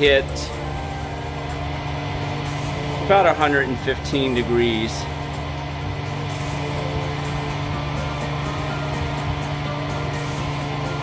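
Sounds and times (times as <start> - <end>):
hair dryer running: 0.0 - 11.0.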